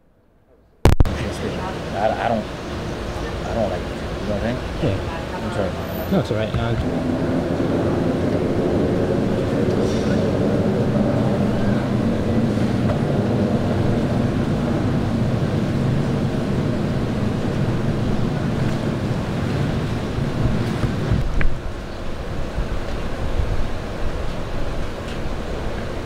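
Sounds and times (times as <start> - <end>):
low rumble of city street: 0.0 - 26.0.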